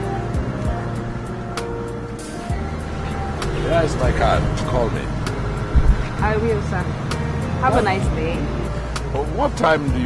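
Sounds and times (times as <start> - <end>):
car engine idling: 0.0 - 10.0
low thump: 5.7 - 6.6
person speaking: 7.6 - 8.4.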